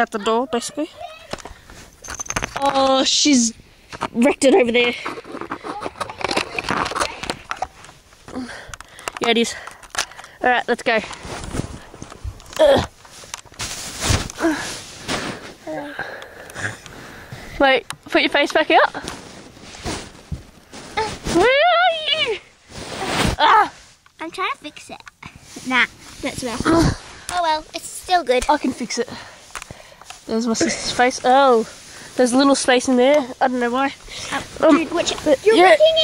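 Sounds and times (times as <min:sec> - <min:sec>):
fabric rustling: 0:10.5 - 0:15.8, 0:16.6 - 0:24.0, 0:25.4 - 0:36.0.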